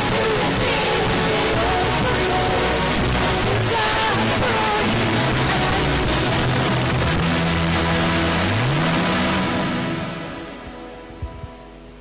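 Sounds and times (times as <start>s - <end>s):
live worship band music: 0.0s - 11.9s.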